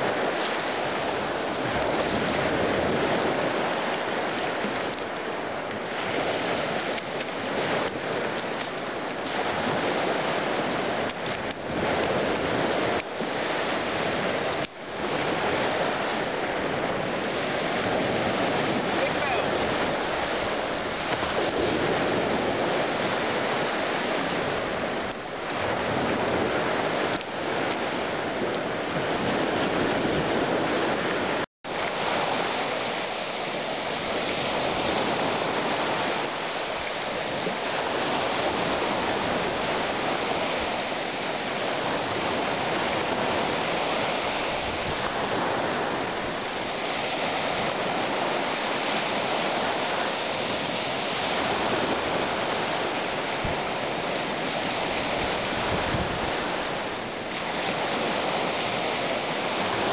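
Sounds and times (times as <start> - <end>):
surf washing onto gravel beach: 0.0 - 59.9
wind on microphone: 0.0 - 59.9.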